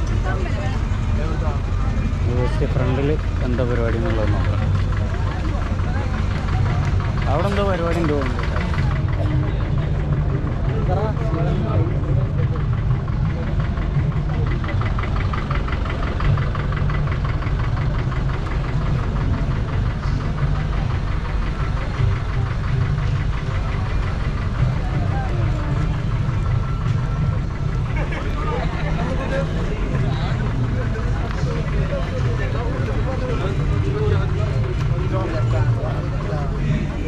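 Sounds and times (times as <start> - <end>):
crowd voices: 0.0 - 37.0
engine running: 0.0 - 37.0.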